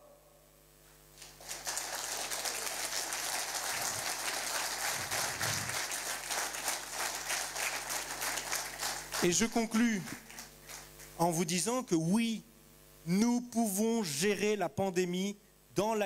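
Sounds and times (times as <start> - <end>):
audience applauding: 1.2 - 11.0.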